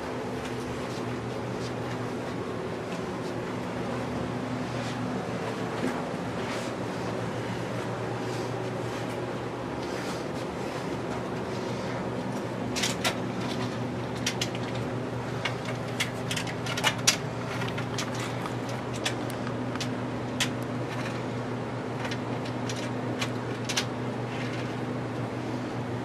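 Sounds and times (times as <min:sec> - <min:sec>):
steady low hum: 0:00.0 - 0:26.0
model train cars clicking: 0:22.0 - 0:24.7.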